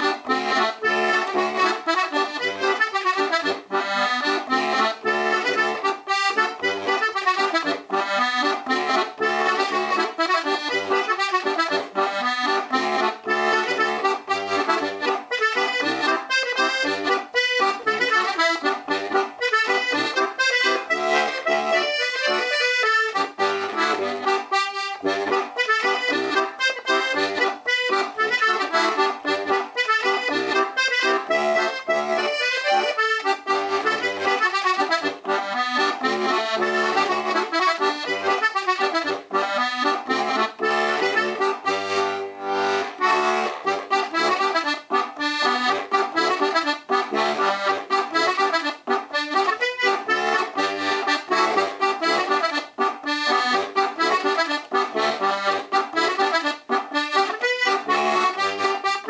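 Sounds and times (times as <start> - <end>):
button accordion tune: 0.0 - 59.0.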